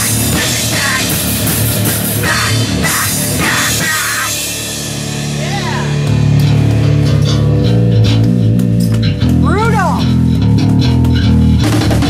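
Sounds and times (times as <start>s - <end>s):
harsh shouted vocal: 0.0s - 1.2s, 2.2s - 4.6s, 5.3s - 6.1s
bass guitar: 0.0s - 12.0s
distorted electric guitar: 0.0s - 12.0s
pounding drum kit: 0.0s - 12.0s.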